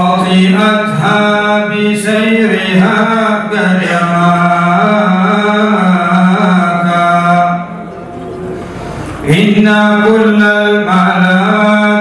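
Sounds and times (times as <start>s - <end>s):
low crowd and hall noise: 0.0s - 12.0s.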